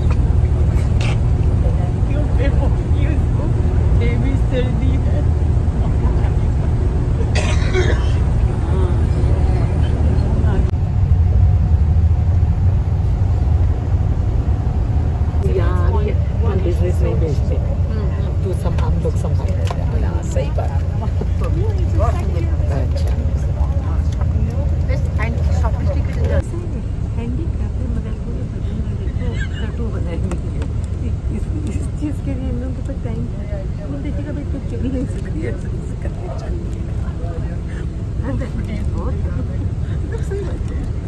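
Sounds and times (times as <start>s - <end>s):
bus engine and tyres rumbling: 0.0s - 41.0s
voices: 0.0s - 41.0s.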